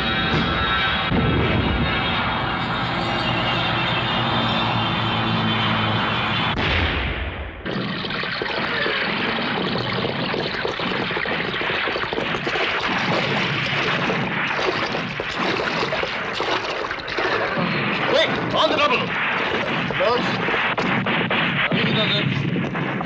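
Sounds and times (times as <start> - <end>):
bombs exploding: 0.0 - 2.6, 6.4 - 23.0
music: 0.0 - 6.6
propeller aircraft engines droning: 0.0 - 6.6.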